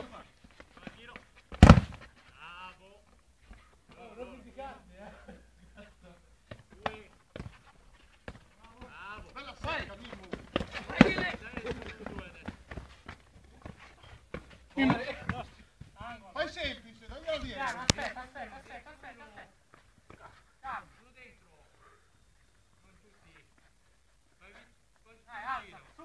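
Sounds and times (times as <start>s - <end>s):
players calling: 0.0s - 23.3s
football kicked hard: 1.5s - 2.1s, 9.6s - 12.9s.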